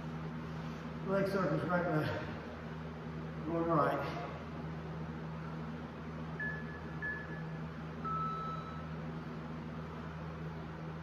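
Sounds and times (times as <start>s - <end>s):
steady fan hum: 0.0s - 11.0s
interval timer beeping: 6.4s - 8.9s.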